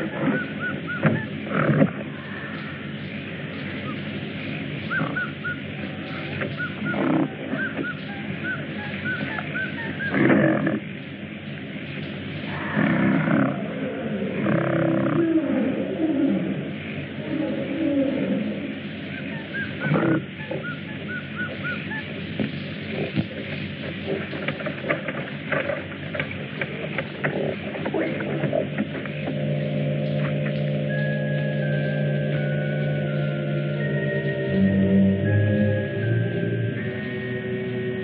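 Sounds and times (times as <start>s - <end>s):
animal cries and roars: 0.0s - 11.0s, 12.4s - 22.2s
bird chirping: 0.0s - 12.5s, 18.8s - 24.7s, 25.3s - 38.0s.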